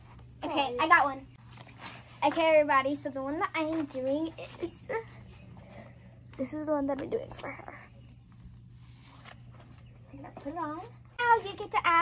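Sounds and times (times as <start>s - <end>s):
faint rustling: 0.0s - 11.8s
steady low hum: 0.0s - 12.0s.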